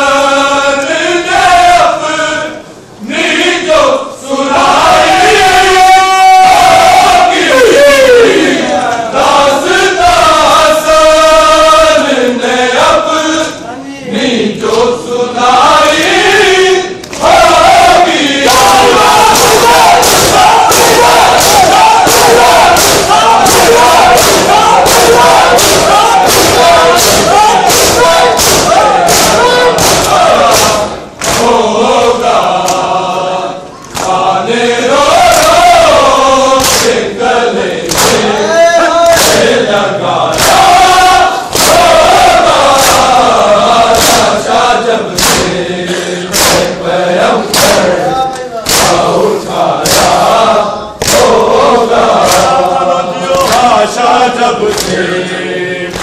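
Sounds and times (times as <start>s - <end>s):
men chanting in unison: 0.0s - 56.0s
rhythmic chest-beating slaps: 8.5s - 13.4s, 14.6s - 56.0s.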